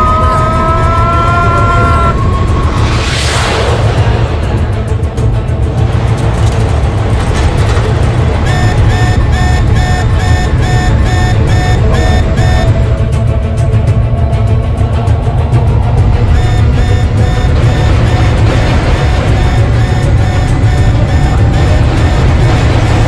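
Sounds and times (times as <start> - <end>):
dramatic music: 0.0 - 23.0
short electronic beeps: 8.4 - 12.8, 16.3 - 23.0
jet engine rumble: 15.1 - 23.0.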